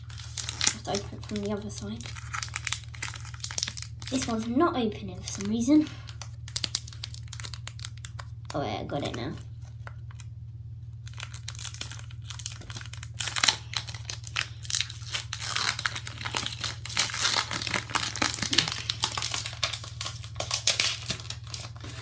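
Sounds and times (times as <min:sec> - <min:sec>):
foil wrapper crinkling and tearing: 0:00.0 - 0:10.3, 0:11.0 - 0:22.0.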